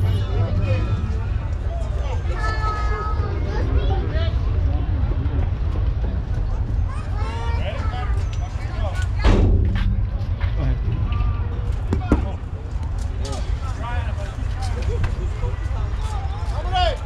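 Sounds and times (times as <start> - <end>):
scattered voices: 0.0 - 17.0
wind rumble on microphone: 0.0 - 17.0
loud sharp knock: 9.2 - 10.2.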